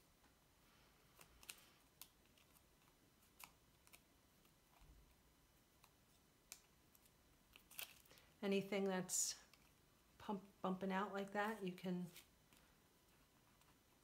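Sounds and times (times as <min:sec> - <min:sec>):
faint paper clicks and crinkles: 0:00.2 - 0:08.4, 0:09.4 - 0:09.8, 0:11.5 - 0:14.0.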